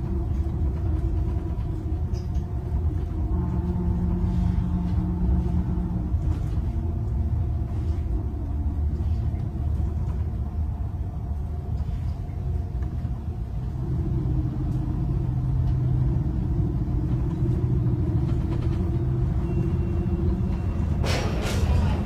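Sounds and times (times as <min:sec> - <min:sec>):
tram running rumble: 0:00.0 - 0:22.0.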